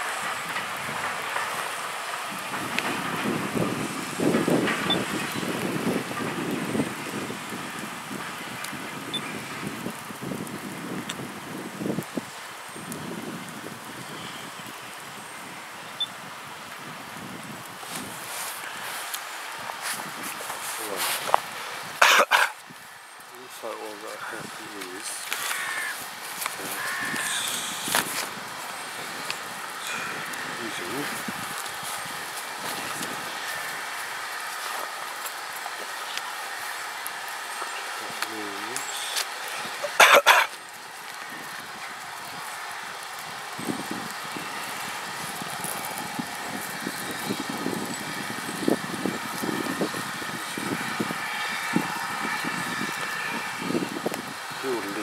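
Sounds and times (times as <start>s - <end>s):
people talking: 20.4s - 21.4s, 23.4s - 25.4s, 29.8s - 31.2s, 38.0s - 39.2s, 54.6s - 55.0s
steam locomotive exhaust: 23.3s - 55.0s.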